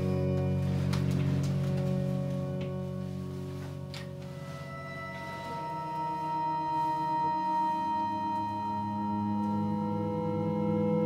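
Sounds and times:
electronic drones and held tones: 0.0 - 11.0.

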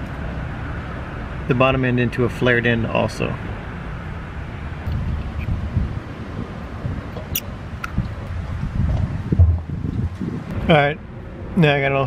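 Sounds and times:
wind rumble on microphone: 4.7 - 11.5
microphone handling rustle: 7.9 - 10.5.

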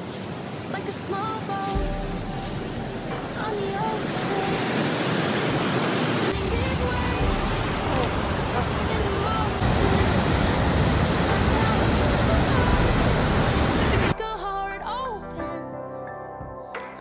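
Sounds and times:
whitewater rushing over boulders: 0.0 - 14.2
faint pop song with singing: 0.7 - 5.2, 6.3 - 17.0.

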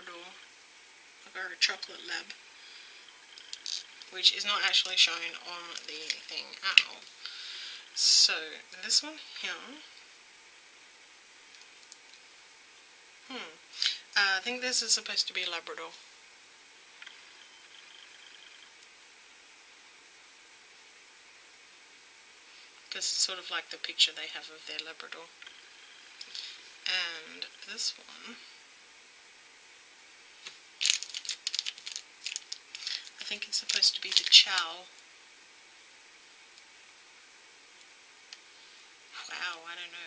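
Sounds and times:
room hiss: 0.0 - 40.0
plastic toy clicking and crinkling: 30.8 - 34.7.

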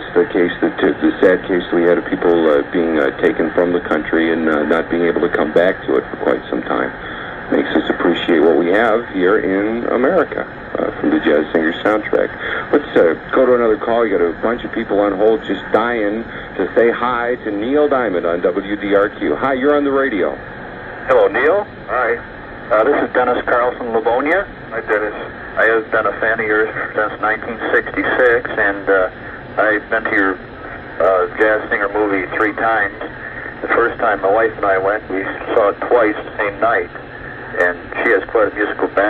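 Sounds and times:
person talking over radio: 0.0 - 20.4, 21.0 - 39.0.

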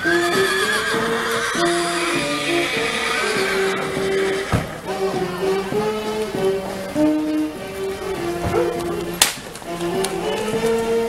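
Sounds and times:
horse whinnying: 0.0 - 4.8
music with held notes: 0.0 - 11.0.

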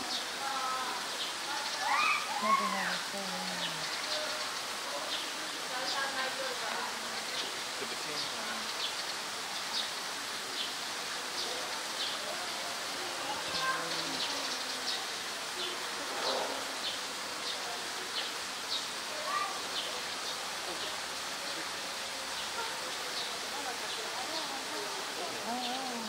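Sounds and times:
faint distant voices: 0.0 - 26.0
steady hiss: 0.0 - 26.0.

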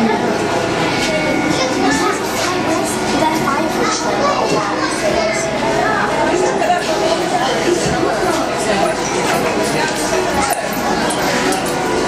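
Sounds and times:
chatter of many people: 0.0 - 12.0
children's voices: 0.0 - 12.0.

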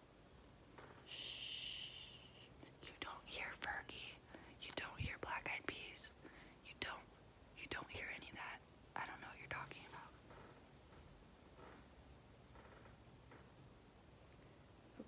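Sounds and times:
woman whispering: 1.1 - 10.2.

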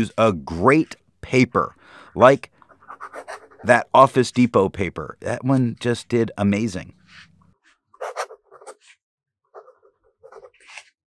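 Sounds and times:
pen nib scratching paper: 2.7 - 3.6, 8.0 - 9.0, 9.6 - 10.9.

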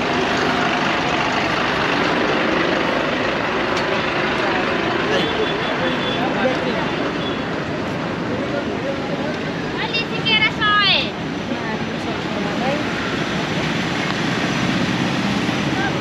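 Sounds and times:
people's voices: 0.0 - 14.3
bus engine and road noise: 0.0 - 16.0
passing traffic: 0.0 - 16.0.

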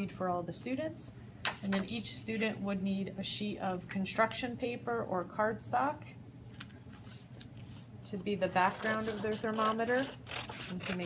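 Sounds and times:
scissors cutting paper: 8.6 - 11.0.

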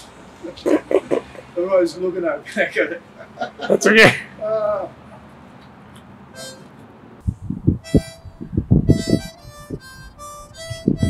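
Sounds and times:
held harmonica note: 6.4 - 6.7, 7.8 - 11.0.

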